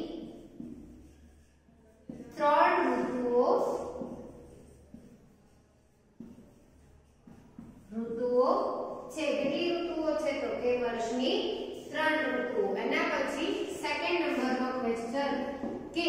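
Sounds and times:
woman speaking: 0.0s - 0.4s, 2.1s - 4.3s, 7.9s - 16.0s
marker tapping on whiteboard: 0.2s - 1.3s, 2.1s - 5.4s, 6.2s - 8.0s, 14.3s - 16.0s.

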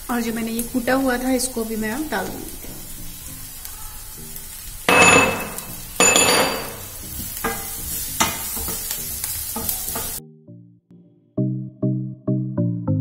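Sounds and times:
onions sizzling in oil: 0.0s - 10.2s.

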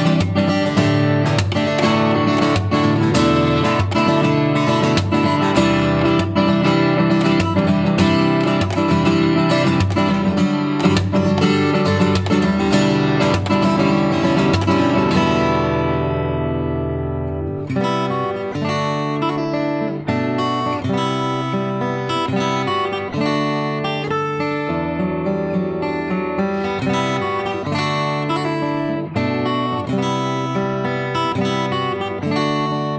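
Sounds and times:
fingerstyle acoustic guitar: 0.0s - 32.9s.

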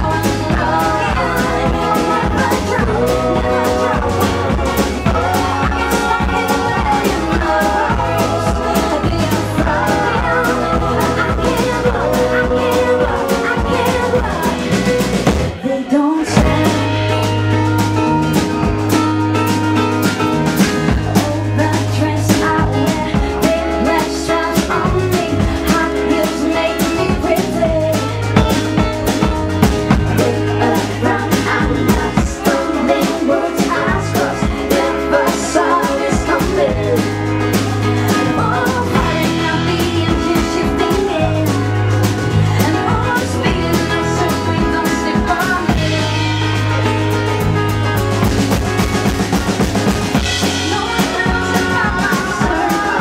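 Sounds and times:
woman singing: 0.0s - 17.6s, 20.9s - 47.0s, 50.1s - 53.0s
bass guitar: 0.0s - 53.0s
drum kit: 0.0s - 53.0s.

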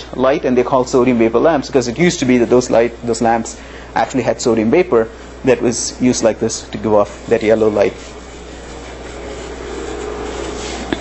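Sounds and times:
constant low hum: 0.0s - 11.0s
rubbing scraping noise: 6.9s - 11.0s.

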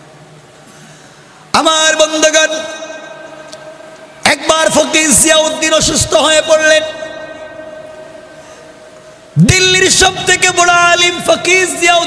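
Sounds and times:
male voice over public address: 1.5s - 12.0s.

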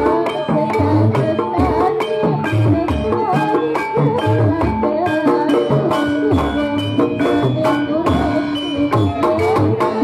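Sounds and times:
hand drums beating: 0.0s - 10.0s.

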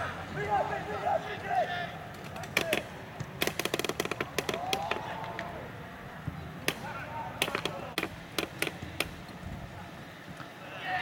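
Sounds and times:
players shouting: 0.0s - 3.3s, 4.3s - 8.2s, 10.5s - 11.0s
sharp knocks: 2.2s - 5.1s, 6.7s - 9.2s.

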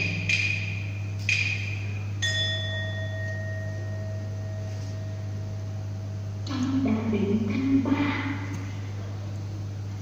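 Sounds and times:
steady low hum: 0.0s - 10.0s
small metal percussion ringing: 0.2s - 5.4s.

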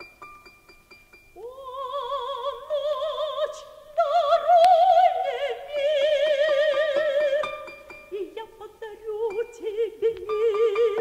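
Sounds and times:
soprano singing with vibrato: 1.4s - 11.0s.

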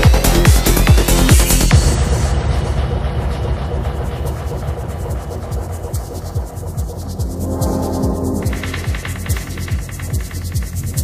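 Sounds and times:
continuous low bass: 2.3s - 11.0s.

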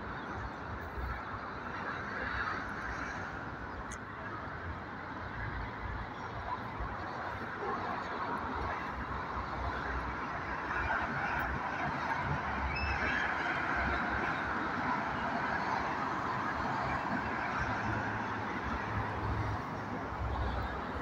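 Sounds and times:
street traffic: 0.0s - 21.0s.

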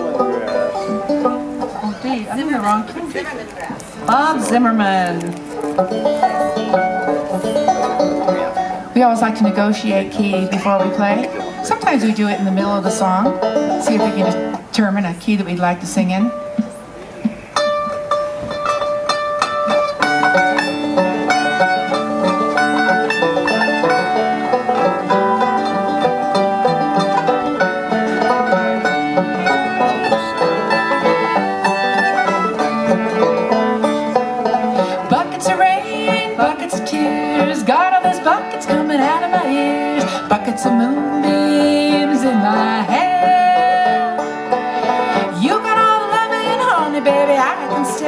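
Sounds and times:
acoustic guitar: 0.0s - 48.0s
banjo: 0.0s - 48.0s
fiddle: 0.0s - 48.0s
mandolin: 0.0s - 48.0s.

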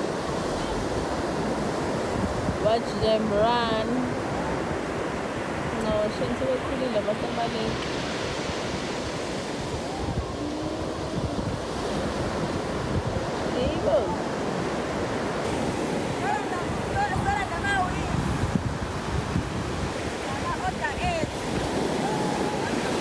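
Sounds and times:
ocean surf breaking: 0.0s - 23.0s
wind on microphone: 0.0s - 23.0s.

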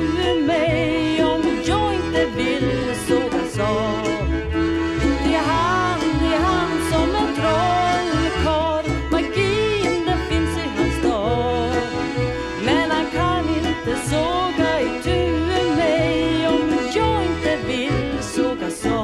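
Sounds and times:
acoustic folk band music: 0.0s - 19.0s.

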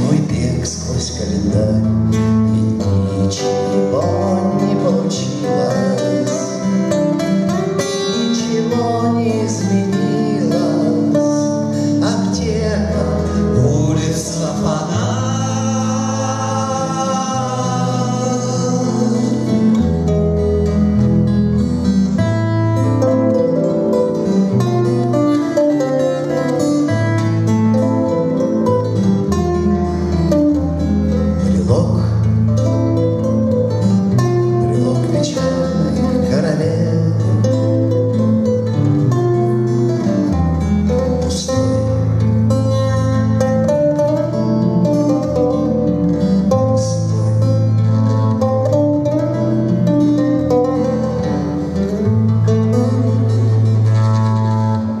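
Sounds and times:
acoustic guitars playing: 0.0s - 55.0s.

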